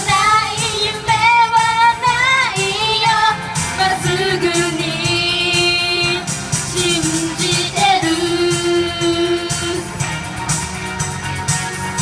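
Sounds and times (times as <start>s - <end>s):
girls singing into microphones: 0.0s - 10.0s
backing track through speakers: 0.0s - 12.0s.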